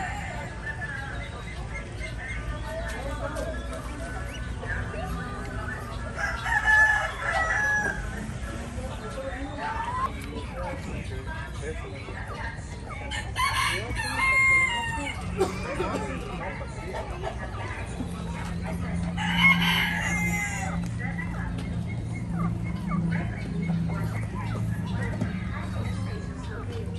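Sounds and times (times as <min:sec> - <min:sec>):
rooster crowing: 0:19.2 - 0:20.7.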